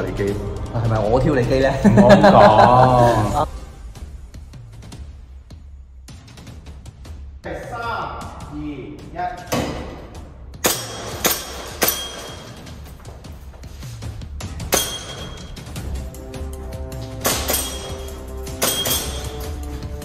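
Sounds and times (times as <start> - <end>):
background music: 0.0 - 20.0
pellets clinking off metal targets: 10.6 - 13.0, 14.6 - 15.7, 17.1 - 19.8.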